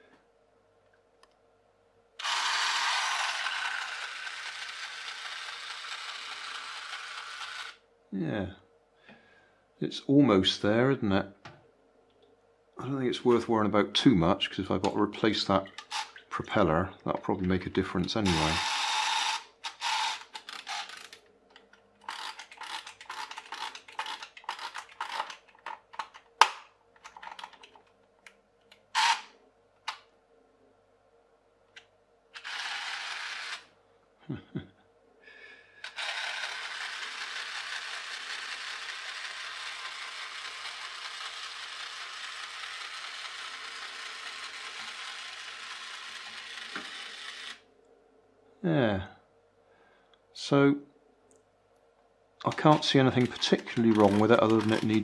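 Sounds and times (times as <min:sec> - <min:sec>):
clockwork motor whirring: 0:02.2 - 0:07.8, 0:15.8 - 0:16.2, 0:18.0 - 0:21.2, 0:22.0 - 0:25.4, 0:29.0 - 0:29.3, 0:32.4 - 0:33.7, 0:35.8 - 0:47.6, 0:52.5 - 0:55.0
clockwork motor winding clicks: 0:02.2 - 0:07.8, 0:15.6 - 0:16.2, 0:17.4 - 0:27.8, 0:28.7 - 0:29.3, 0:32.4 - 0:33.7, 0:35.8 - 0:47.6, 0:52.5 - 0:55.0.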